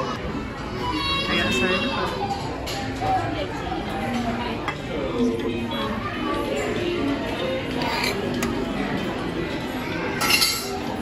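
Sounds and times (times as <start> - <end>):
spoon clinking on plate: 10.2 - 10.8.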